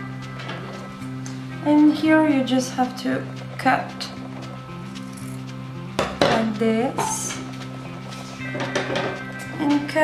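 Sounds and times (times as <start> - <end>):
background music with low notes: 0.0 - 10.0.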